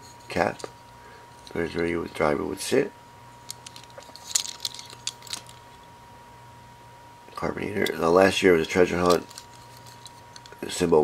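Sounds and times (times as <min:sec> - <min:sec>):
low steady hum: 0:00.0 - 0:11.0
faint clicks and rustles: 0:03.4 - 0:05.9, 0:08.6 - 0:10.6.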